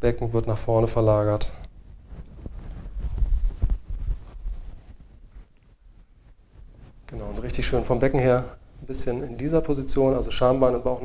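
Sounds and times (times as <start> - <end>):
soft thumps of person moving: 1.7 - 7.8
footsteps on floor mat: 2.0 - 7.0.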